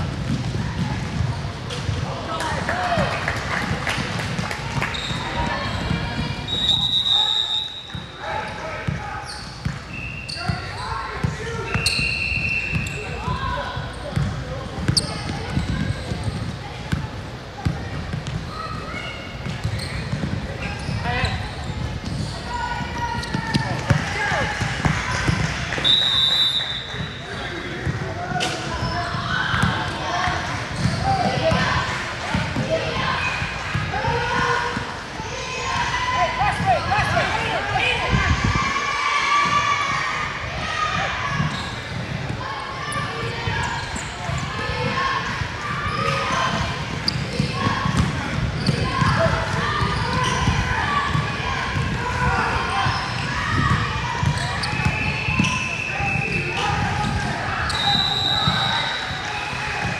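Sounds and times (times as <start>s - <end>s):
sneakers squeaking: 4.2s - 37.6s, 39.4s - 59.9s
basketball bouncing: 19.4s - 20.9s, 46.0s - 52.0s.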